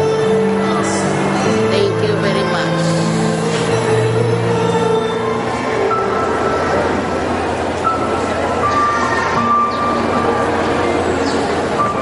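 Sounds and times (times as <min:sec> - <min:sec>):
crowd noise: 0:00.0 - 0:12.0
slow music of sustained notes: 0:00.0 - 0:12.0.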